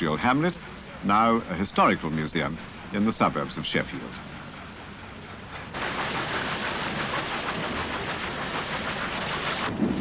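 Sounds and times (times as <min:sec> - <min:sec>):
water splashing off water wheel: 0:00.2 - 0:10.0.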